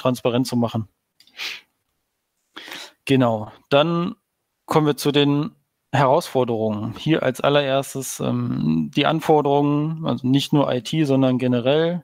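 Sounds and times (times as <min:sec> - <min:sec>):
man breathing in sharply: 0:01.3 - 0:01.7, 0:02.5 - 0:03.0.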